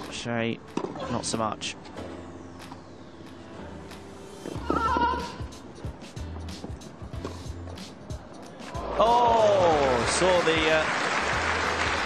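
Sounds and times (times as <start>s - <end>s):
background music: 0.0s - 12.0s
tennis balls struck by rackets: 0.6s - 1.0s.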